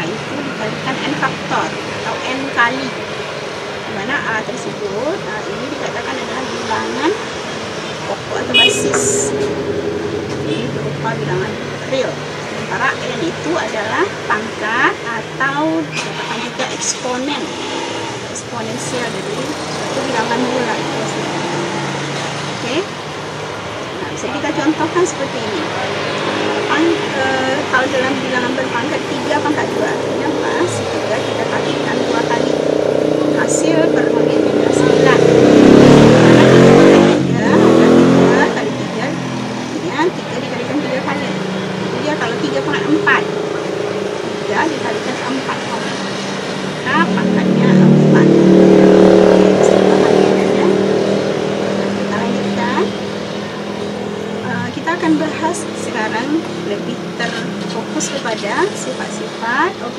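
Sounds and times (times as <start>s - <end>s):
passing motor vehicle engine: 0.0s - 59.9s
traffic hum: 0.0s - 59.9s.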